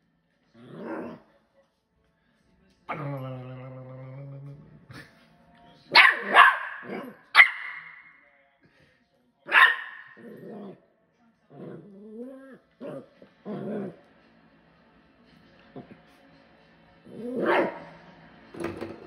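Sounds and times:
puppy growling: 0.5 - 1.3, 2.9 - 5.1, 10.1 - 10.9, 11.5 - 14.1, 17.1 - 17.9
puppy barking: 5.9 - 8.1, 9.5 - 10.4, 17.3 - 17.9.

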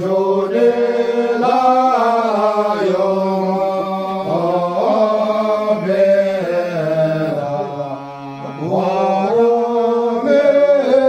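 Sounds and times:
men chanting together: 0.0 - 7.9, 8.5 - 11.0.

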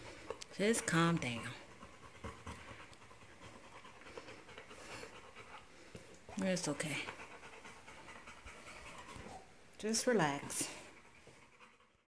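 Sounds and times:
dog panting faintly: 0.0 - 12.0.

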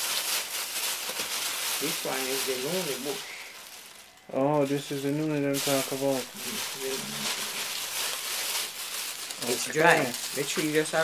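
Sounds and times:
dried leaves rustling: 0.0 - 11.0.

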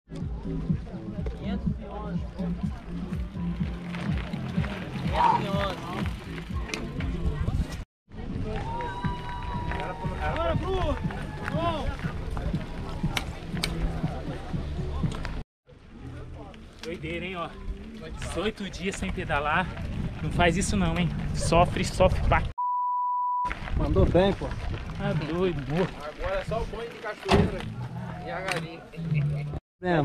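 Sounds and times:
indistinct voices and shouts: 4.9 - 6.1.

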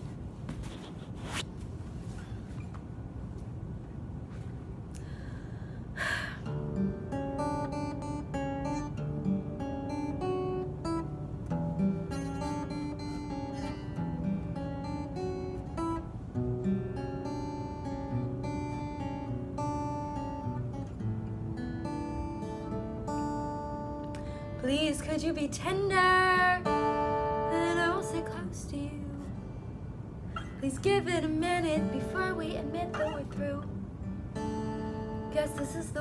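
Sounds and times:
acoustic guitar picked chords: 6.4 - 36.0.

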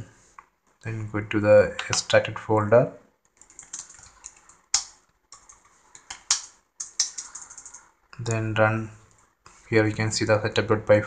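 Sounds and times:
keyboard typing: 3.3 - 8.4.

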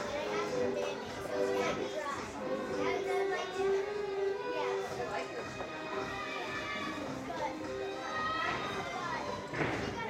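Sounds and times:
children and adults chattering: 0.0 - 10.0
music with held notes: 0.0 - 10.0.

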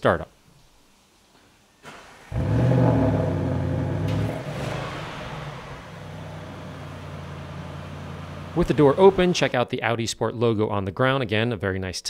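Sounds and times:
car engine starting and idling: 1.8 - 9.6.

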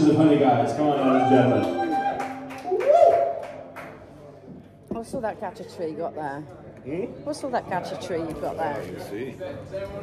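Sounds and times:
bar room murmur: 0.0 - 10.0.

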